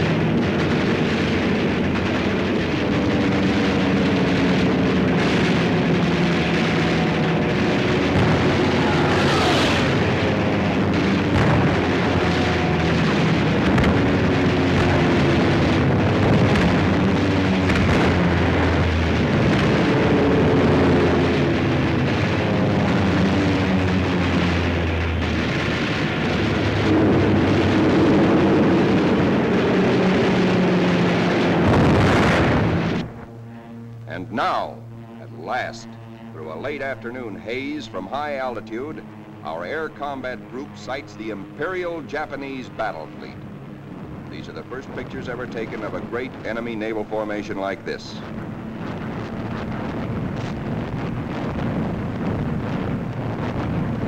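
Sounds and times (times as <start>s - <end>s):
explosions: 0.0s - 39.0s
aircraft engines running: 0.0s - 54.0s
gunfire: 0.6s - 20.0s.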